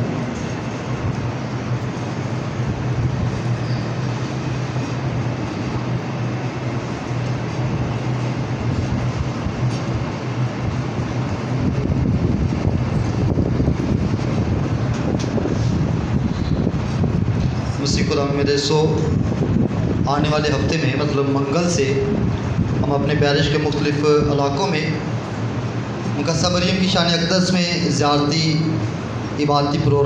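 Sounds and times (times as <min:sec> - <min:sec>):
air conditioner running: 0:00.0 - 0:30.0.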